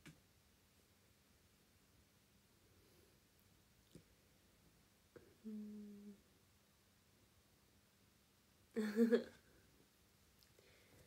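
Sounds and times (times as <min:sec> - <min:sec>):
woman humming: 0:05.2 - 0:06.2.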